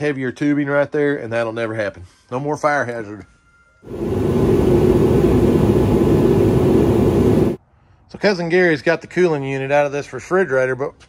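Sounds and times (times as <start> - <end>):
machine air rushing with hum: 3.9 - 7.6.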